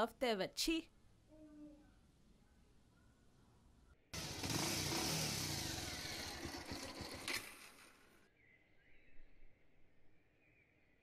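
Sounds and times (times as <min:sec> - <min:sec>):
motor vehicle passing: 0:04.2 - 0:08.0.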